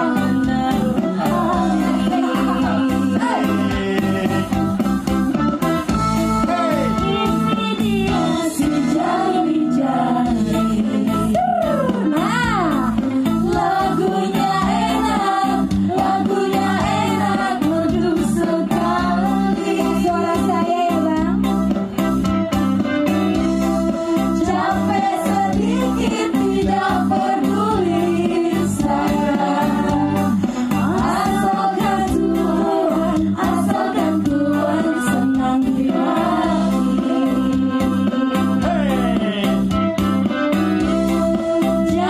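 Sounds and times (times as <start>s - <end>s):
person singing: 0.0s - 4.6s
live band music: 0.0s - 42.0s.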